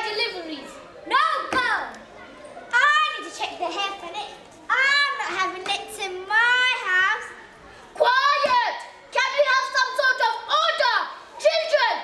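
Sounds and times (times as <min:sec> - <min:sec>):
children calling out: 0:00.0 - 0:12.0.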